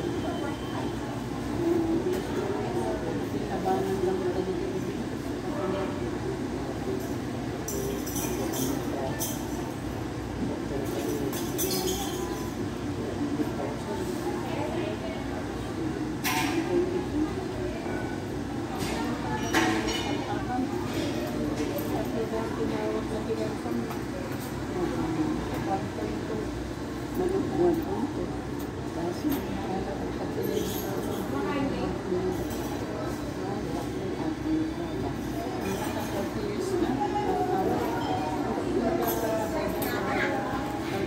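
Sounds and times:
faint indistinct voices: 0:00.0 - 0:41.0
street noise: 0:00.0 - 0:41.0.

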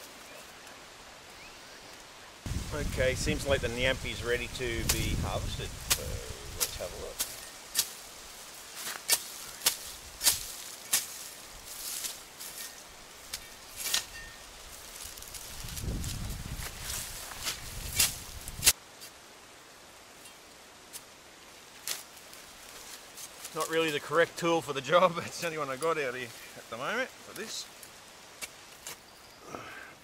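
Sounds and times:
leaves and stems rustling: 0:00.0 - 0:29.4
digging knocks and scrapes: 0:08.7 - 0:15.5.

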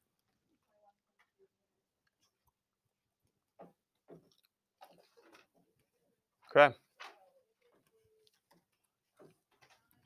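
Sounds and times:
man saying a word: 0:06.5 - 0:06.8.

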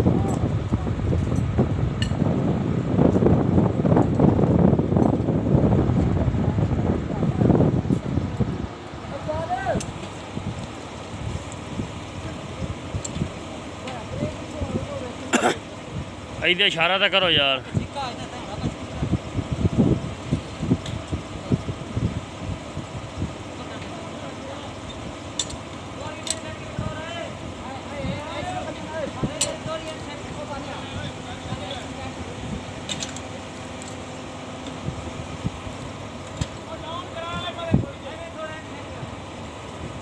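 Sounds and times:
crane engine running: 0:00.0 - 0:40.0.

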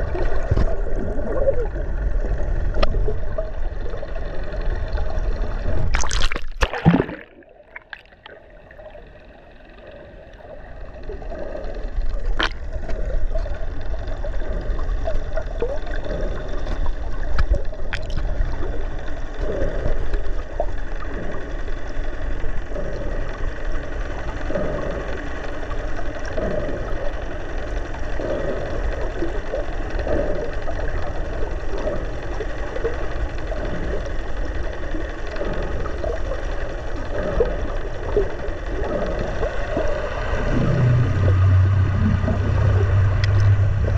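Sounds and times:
low drone: 0:00.0 - 0:43.9
muffled underwater water wash: 0:00.0 - 0:43.9
short water swishes: 0:05.6 - 0:09.0
faint steady tones: 0:07.4 - 0:43.9.

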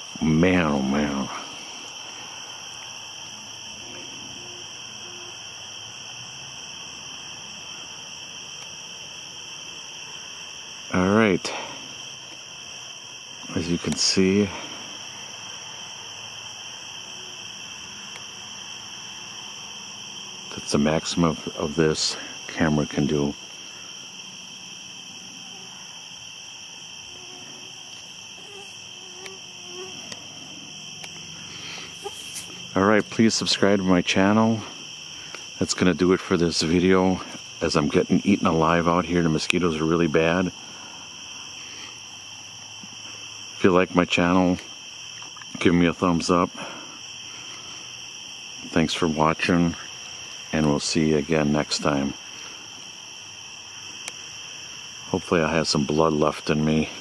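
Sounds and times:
crickets trilling: 0:00.0 - 0:57.0
faint low hooting: 0:09.8 - 0:39.2.

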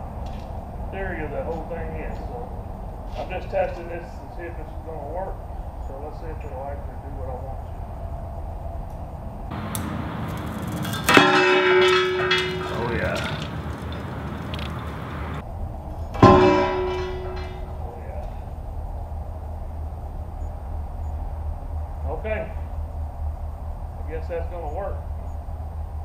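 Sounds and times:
loud metallic clangs: 0:09.5 - 0:15.4, 0:16.0 - 0:18.6.

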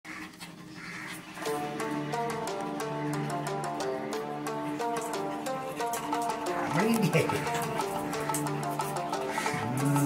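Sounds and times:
dogs panting: 0:00.1 - 0:10.0
music with held notes: 0:01.3 - 0:10.0.

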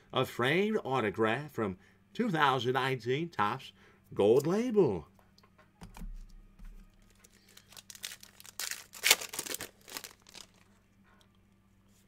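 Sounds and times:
wrapper tearing and crinkling: 0:07.0 - 0:10.7.

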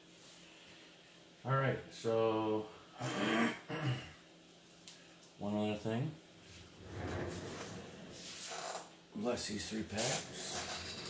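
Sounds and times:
man clearing throat: 0:03.0 - 0:04.2.

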